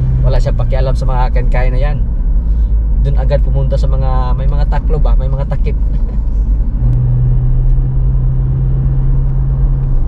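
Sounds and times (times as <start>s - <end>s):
constant low hum: 0.0s - 10.0s
engine and tyres rumbling: 0.0s - 10.0s.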